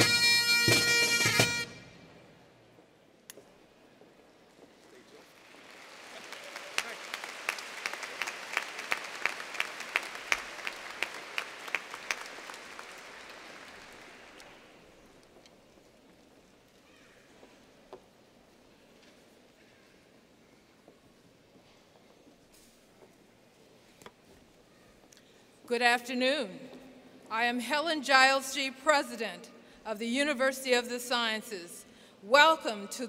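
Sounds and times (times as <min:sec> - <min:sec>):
audience applauding: 0:05.0 - 0:15.0
close hands clapping steadily: 0:05.2 - 0:14.6.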